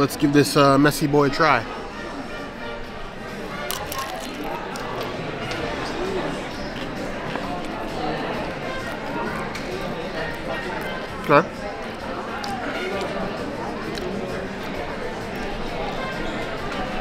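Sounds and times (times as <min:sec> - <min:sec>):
distant voices chattering: 0:00.0 - 0:17.0.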